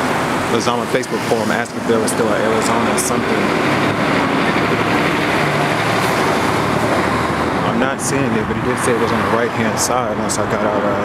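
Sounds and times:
vehicle running close by: 0.0 - 11.0.

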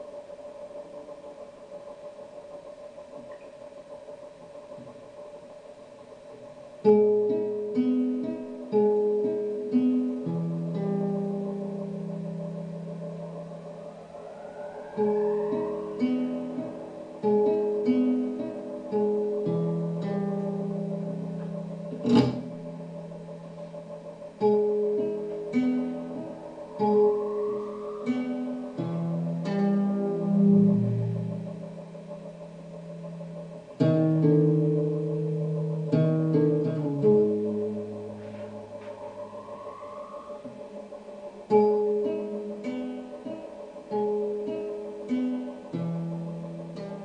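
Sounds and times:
steady drone: 0.0 - 47.0
low plucked string notes: 6.8 - 47.0
rising swell: 10.6 - 22.0, 22.6 - 33.6, 37.0 - 43.6.

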